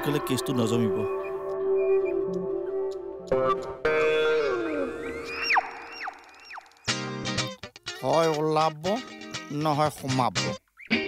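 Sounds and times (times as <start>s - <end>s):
whistle-like rising tones: 0.7s - 3.3s, 4.0s - 6.9s.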